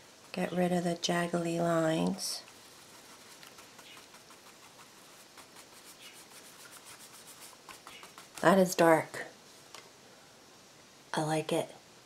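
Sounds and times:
paintbrush bristles scratching: 0.0 - 8.9.

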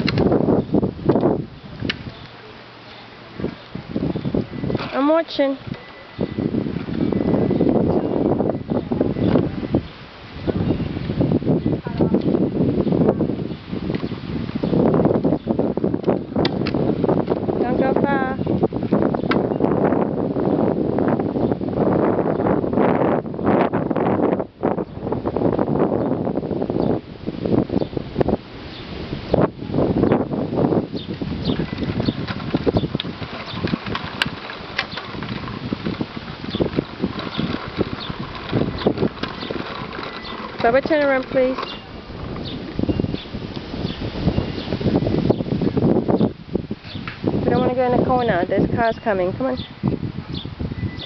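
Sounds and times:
plastic wheels rolling on asphalt: 0.0 - 51.0
wind buffeting microphone: 0.0 - 51.0.

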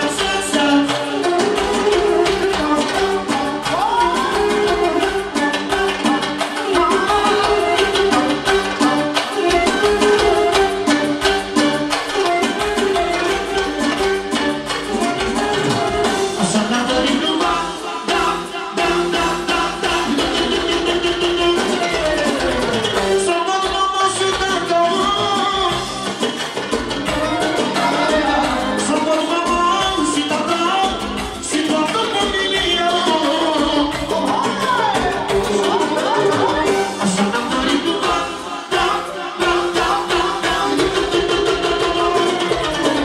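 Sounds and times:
man singing into a microphone: 0.0 - 10.5, 15.6 - 26.2, 28.1 - 43.0
live dance-band music: 0.0 - 43.0.

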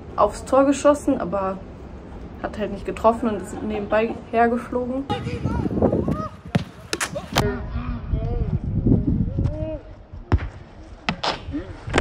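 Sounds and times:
wind rumbling on microphone: 5.0 - 12.0
boot kicking football thuds: 6.4 - 7.4.

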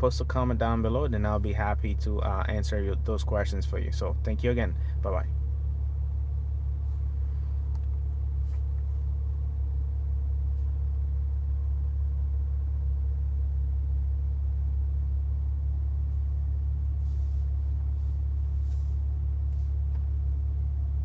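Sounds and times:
low engine rumble inside car: 0.0 - 21.0.

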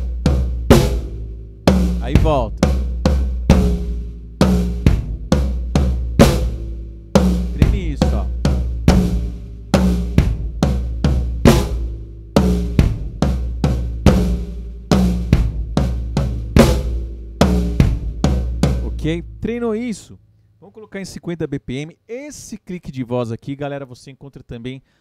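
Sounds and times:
drum kit playing tribal groove: 0.0 - 19.9.

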